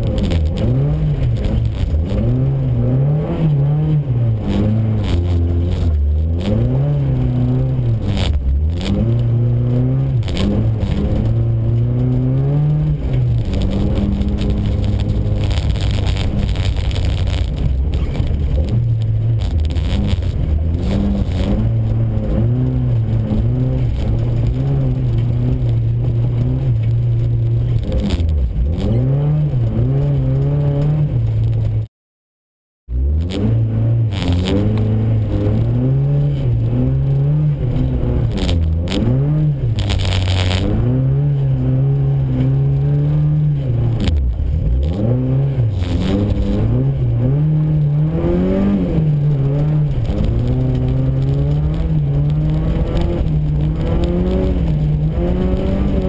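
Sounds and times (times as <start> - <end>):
car engine revving: 0.0 - 31.9, 32.9 - 56.0.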